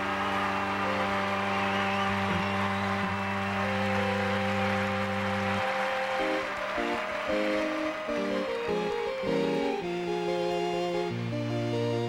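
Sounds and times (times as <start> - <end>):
held organ chords: 0.0 - 12.0.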